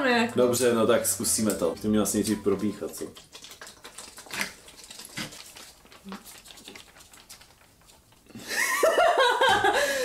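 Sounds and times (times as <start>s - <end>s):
foil pouches crinkling: 2.2s - 8.3s.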